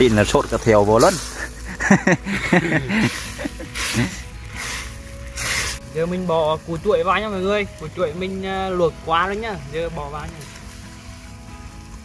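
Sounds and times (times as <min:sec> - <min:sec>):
man laughing: 0:01.2 - 0:04.2.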